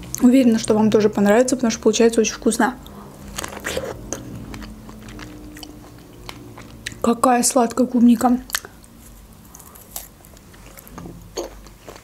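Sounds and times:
biting and chewing strawberry: 2.8s - 7.1s, 8.4s - 12.0s.

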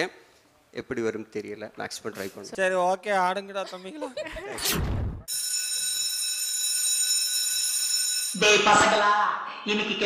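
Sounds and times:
electric school bell ringing: 5.3s - 8.9s.

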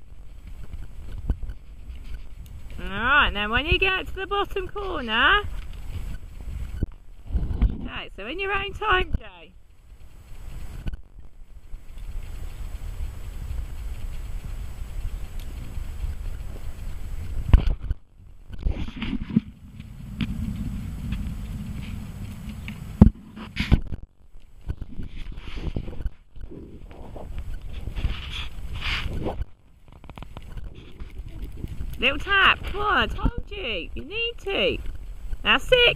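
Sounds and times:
wind rumbling on microphone: 0.0s - 35.9s.

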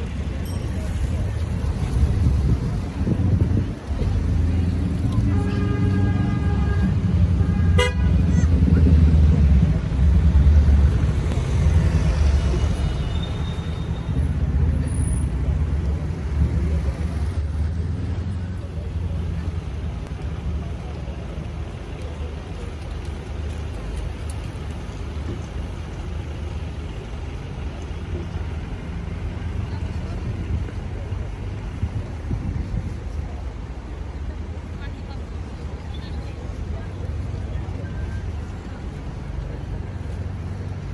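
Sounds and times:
road traffic rumble: 0.0s - 40.9s
car horn: 5.2s - 8.7s.

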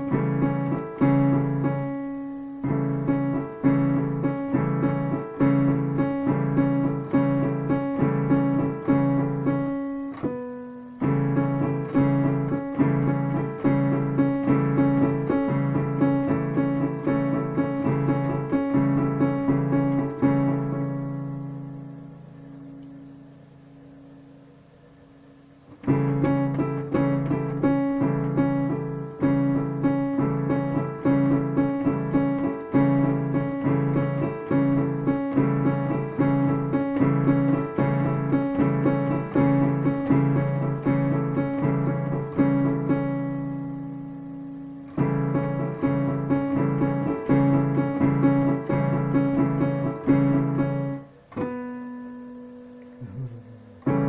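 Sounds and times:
digital piano chords and notes: 0.0s - 24.3s, 24.9s - 54.0s.

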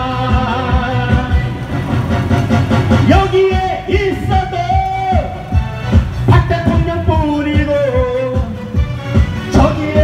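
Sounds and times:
man singing into microphone: 0.0s - 1.6s, 3.0s - 5.4s, 6.3s - 8.6s, 9.5s - 10.0s.

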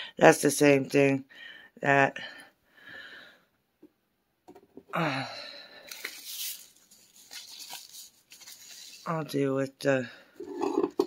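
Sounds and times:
paper packets rustling: 5.7s - 9.2s.

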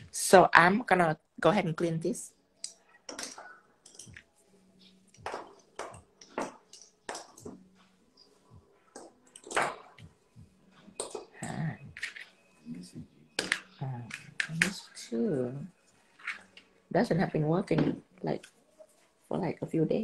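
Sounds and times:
tools and bottles clicking on table: 2.6s - 4.3s, 5.1s - 8.3s, 8.9s - 10.1s, 10.8s - 12.4s, 13.4s - 14.9s.

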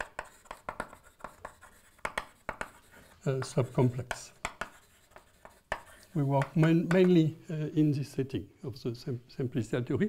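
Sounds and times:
chalk writing on blackboard: 0.0s - 7.2s.

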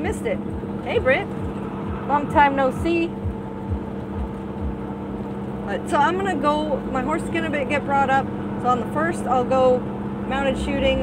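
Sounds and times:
road and tyre noise: 0.0s - 11.0s
truck diesel engine droning: 0.0s - 11.0s.

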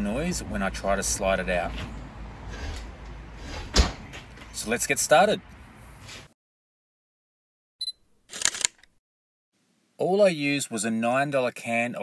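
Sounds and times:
camera shutter clack: 8.3s - 8.9s.

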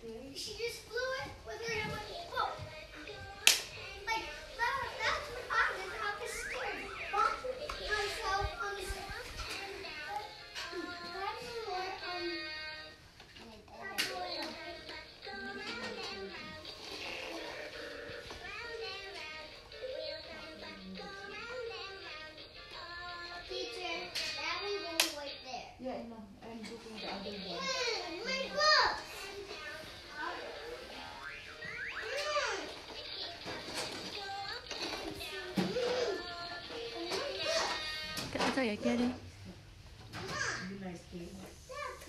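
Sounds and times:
children's song: 0.0s - 25.8s, 26.6s - 39.3s
toddlers chattering and babbling: 0.0s - 42.0s.

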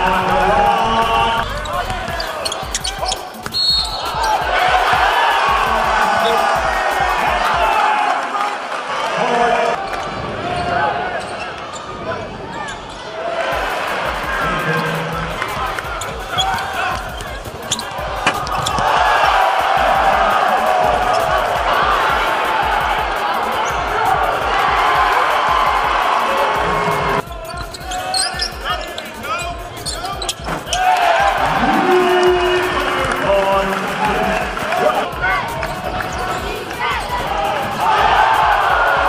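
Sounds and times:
crowd voices: 0.0s - 39.0s
basketball bouncing: 0.2s - 7.7s, 13.6s - 26.0s
ball bouncing on hardwood court: 16.1s - 18.9s.

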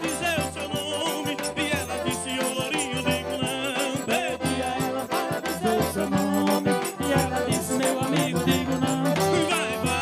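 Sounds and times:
accordion playing: 0.0s - 10.0s
bass drum beat: 0.0s - 10.0s
light rattling percussion: 0.0s - 10.0s
man singing into a microphone: 0.0s - 10.0s.

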